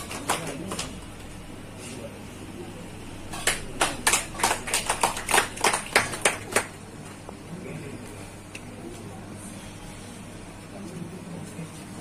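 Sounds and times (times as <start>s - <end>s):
hand clapping: 0.0s - 1.1s, 3.3s - 6.8s.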